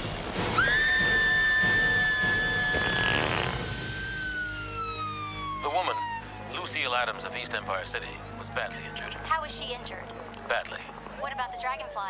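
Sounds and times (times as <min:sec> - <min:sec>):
siren wailing: 0:00.5 - 0:07.2, 0:11.2 - 0:12.0.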